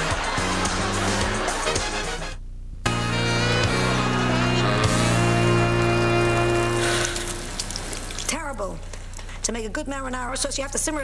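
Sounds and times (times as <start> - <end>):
music chord: 2.9 - 7.6
low hiss: 4.6 - 11.0.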